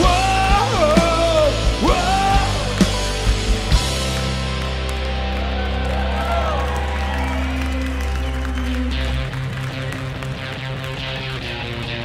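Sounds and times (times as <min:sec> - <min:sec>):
guitar strumming: 0:00.0 - 0:12.0.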